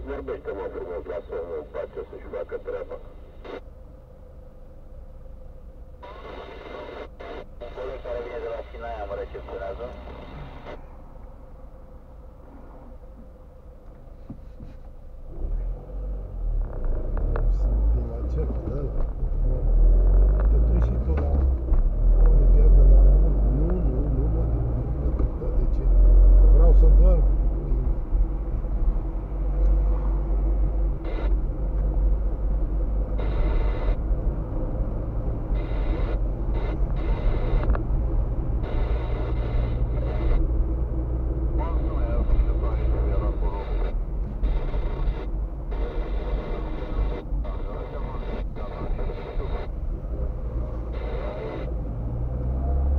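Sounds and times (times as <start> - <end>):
car road and engine rumble: 0.0 - 52.9.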